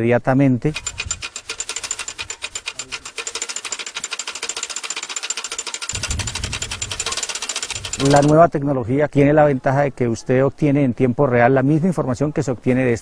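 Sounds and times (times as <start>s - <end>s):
clicking mechanism ticking: 0.7s - 8.4s.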